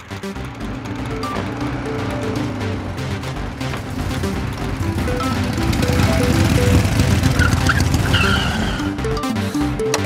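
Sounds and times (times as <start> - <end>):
tyres skidding and squealing: 0.0 - 9.5
background music score: 0.0 - 10.0
motorcycle engine running: 0.0 - 10.0.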